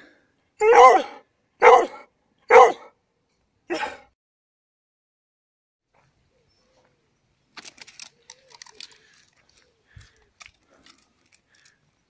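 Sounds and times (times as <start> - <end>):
dog barking: 0.6 - 2.9, 3.7 - 4.0.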